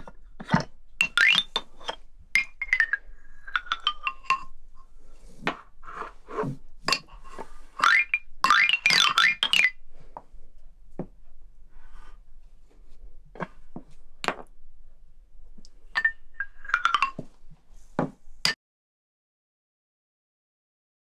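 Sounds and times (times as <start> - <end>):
toy xylophone notes: 1.0 - 4.4, 7.8 - 9.8.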